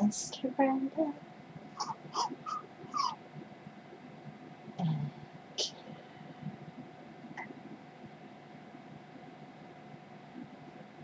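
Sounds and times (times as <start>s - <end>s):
high squeaky animal calls: 1.8s - 3.2s.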